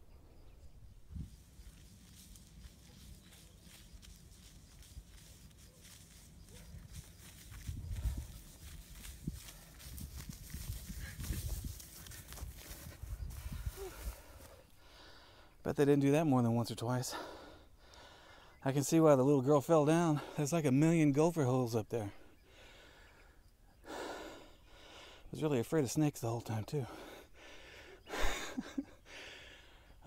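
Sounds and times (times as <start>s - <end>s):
grass swishing against legs: 1.2s - 14.5s.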